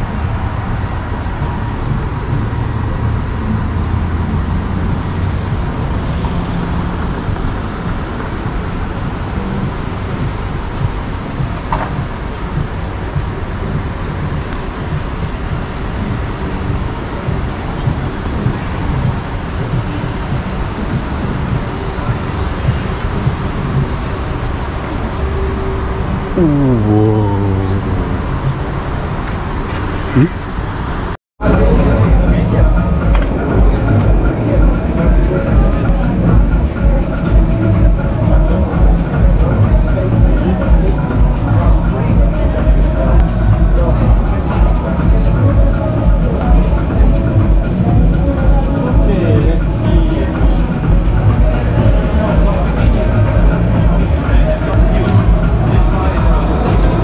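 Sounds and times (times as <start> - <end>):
traffic noise: 0.0 - 57.0
indistinct voices: 26.2 - 29.0, 30.0 - 30.4
heavy low rumble: 26.4 - 28.7.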